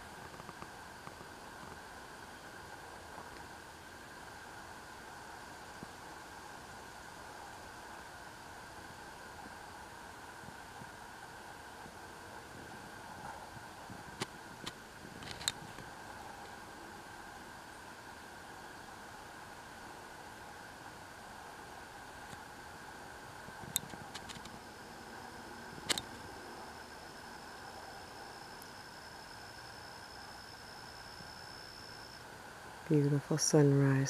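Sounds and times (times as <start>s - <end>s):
background hum and hiss: 0.0s - 34.0s.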